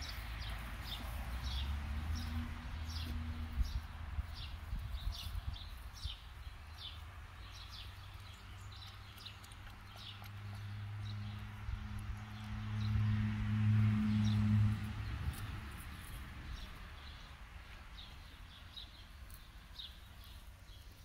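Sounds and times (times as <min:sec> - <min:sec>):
small birds chirping: 0:00.0 - 0:13.0, 0:15.0 - 0:21.0.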